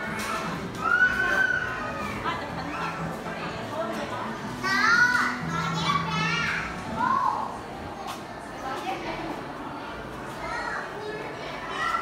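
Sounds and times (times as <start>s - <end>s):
children chattering: 0.0s - 12.0s.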